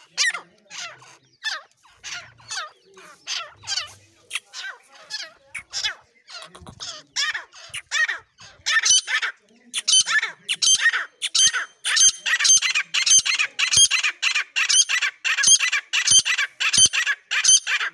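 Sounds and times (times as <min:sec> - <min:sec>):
birds giving high ringing calls: 0:00.0 - 0:17.9.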